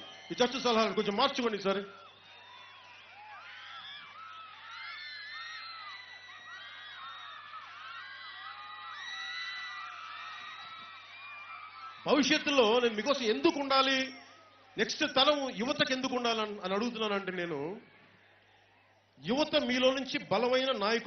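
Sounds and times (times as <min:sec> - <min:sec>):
whoops and shouts: 0:00.0 - 0:13.2
crowd cheering: 0:00.0 - 0:21.0.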